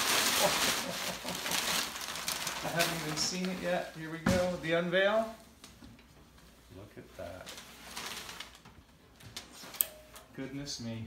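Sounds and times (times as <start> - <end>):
wrapping rustling: 0.0 - 9.8.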